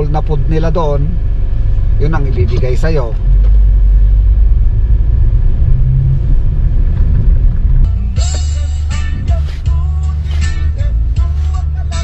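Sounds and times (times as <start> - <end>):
car engine rumble and road noise: 0.0 - 12.0
music: 7.8 - 12.0.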